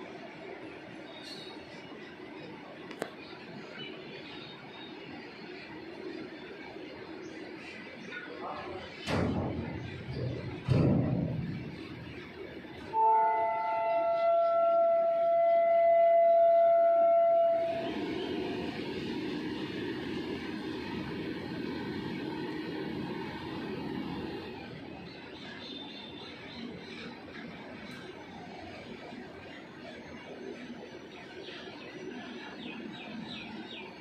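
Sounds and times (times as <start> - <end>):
freight wagons rumbling on rails: 0.0 - 34.0
locomotive horn blast: 12.8 - 18.5.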